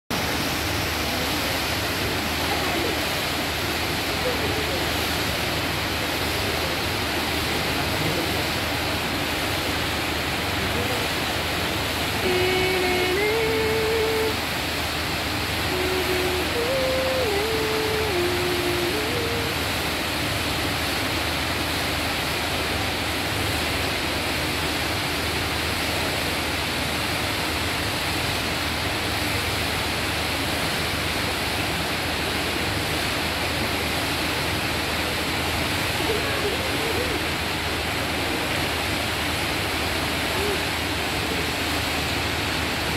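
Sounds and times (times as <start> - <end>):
fountain water splashing: 0.1 - 42.9.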